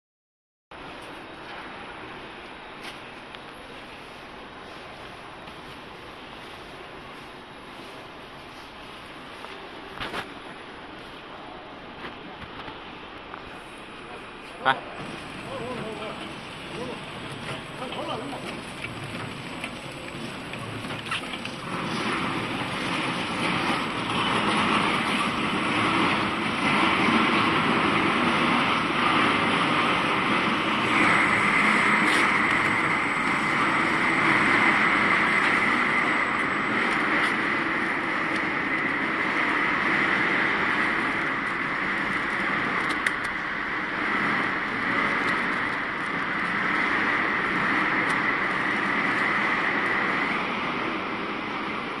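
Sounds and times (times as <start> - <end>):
packaging machine running: 15.0 - 29.5.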